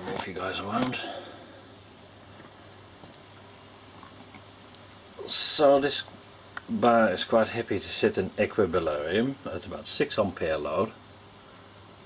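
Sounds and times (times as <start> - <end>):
faint electrical hum: 0.0 - 12.0
even hiss: 4.6 - 12.0.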